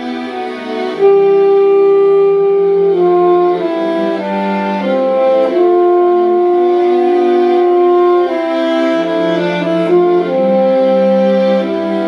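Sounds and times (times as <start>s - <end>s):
solo saxophone melody: 0.0s - 12.0s.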